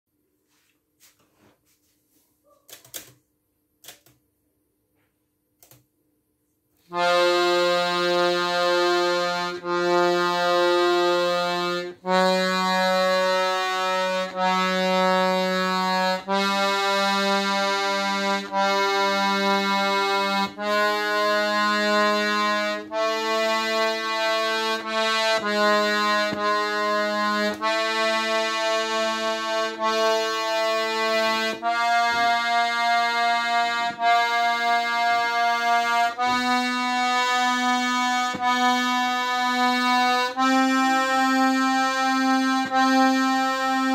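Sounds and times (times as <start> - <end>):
accordion held notes: 6.9 - 43.9.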